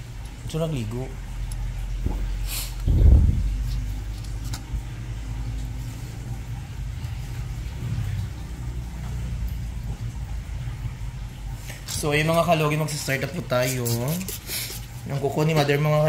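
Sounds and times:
low rumble: 2.8s - 3.8s
loud thump: 2.9s - 3.5s.

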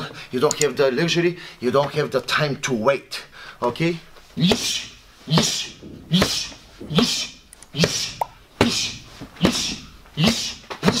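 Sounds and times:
person grunting: 4.4s - 10.6s
punches hitting focus mitts: 4.4s - 11.0s.

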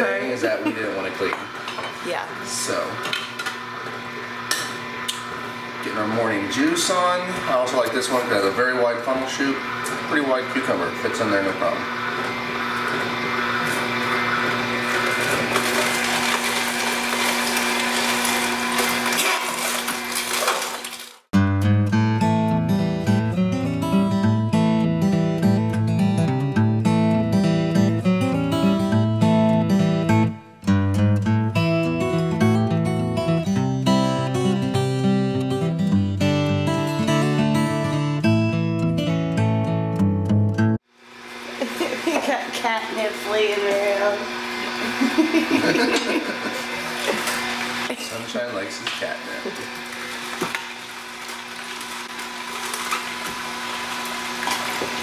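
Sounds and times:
juicer motor hum: 0.0s - 21.3s, 40.8s - 55.0s
background music with plucked guitar: 21.4s - 40.8s.

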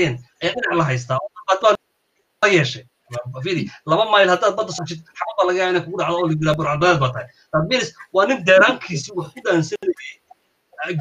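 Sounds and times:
man talking: 0.0s - 1.8s, 2.4s - 10.2s, 10.8s - 11.0s.

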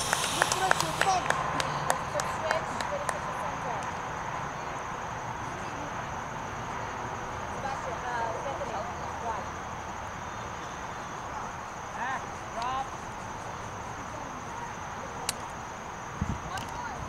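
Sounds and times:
high-pitched drone: 0.0s - 1.6s
distant voices calling out: 0.0s - 17.0s.

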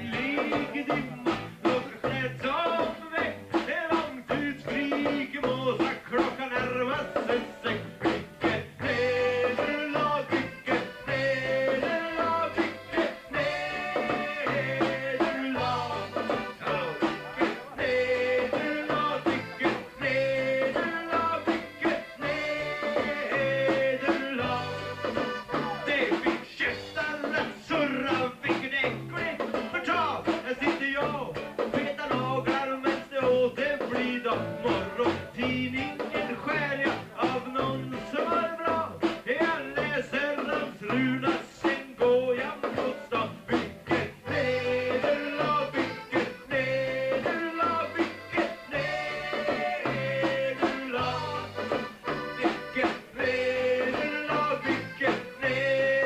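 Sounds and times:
live band playing: 0.0s - 56.0s
men singing: 0.0s - 56.0s.

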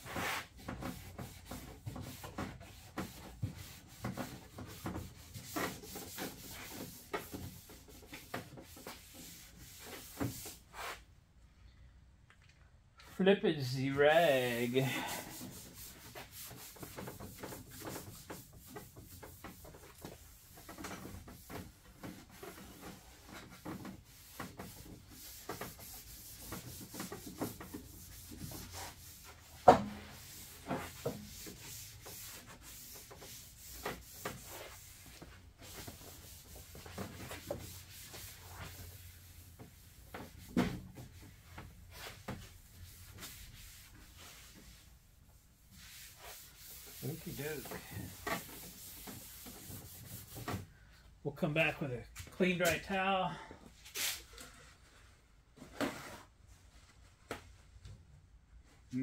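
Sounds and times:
towel wiping across metal hood: 0.0s - 11.1s, 13.1s - 50.6s, 53.8s - 54.3s.

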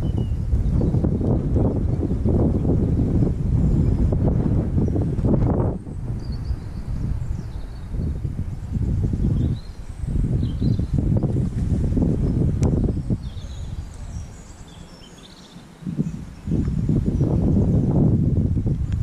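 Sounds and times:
wind buffeting microphone: 0.0s - 19.0s
faint high bird chirps: 6.2s - 8.2s, 9.2s - 11.3s, 12.2s - 17.9s.

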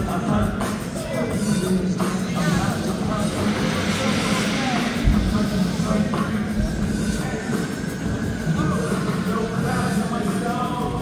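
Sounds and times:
voices of people: 0.0s - 11.0s
steady low rumble: 1.6s - 11.0s.

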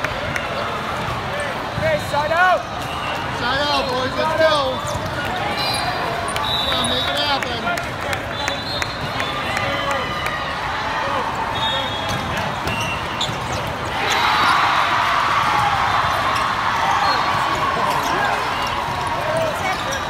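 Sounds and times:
many voices and player calls: 0.0s - 20.0s
short high referee whistles: 5.6s - 7.4s, 8.3s - 9.9s, 11.5s - 14.2s.

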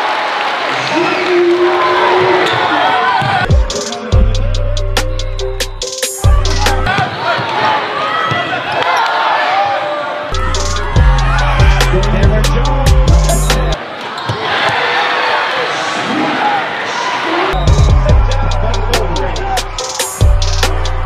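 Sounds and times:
music with heavy bass line: 3.5s - 6.9s, 10.4s - 13.8s, 17.6s - 21.0s.

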